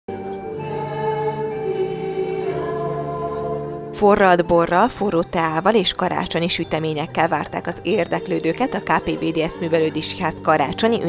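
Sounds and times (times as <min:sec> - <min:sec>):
choir singing held chords: 0:00.1 - 0:04.8, 0:06.9 - 0:11.0.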